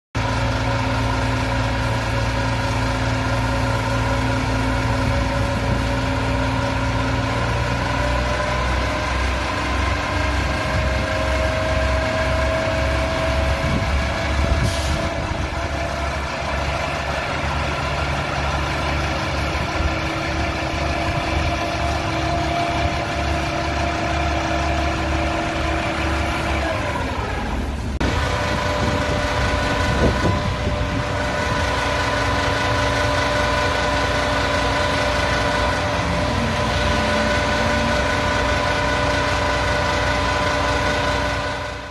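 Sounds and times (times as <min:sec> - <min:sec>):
diesel truck engine running: 0:00.2 - 0:41.9
hiss of water jet: 0:14.6 - 0:15.1.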